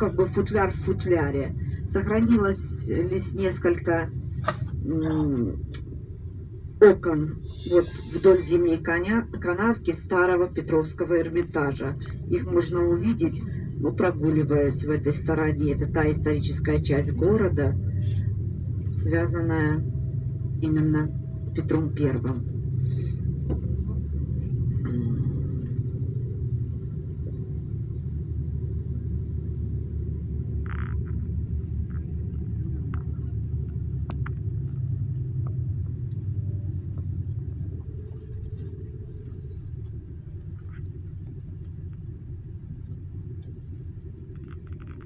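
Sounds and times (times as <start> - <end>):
bus engine and tyres rumbling: 0.0 - 45.0.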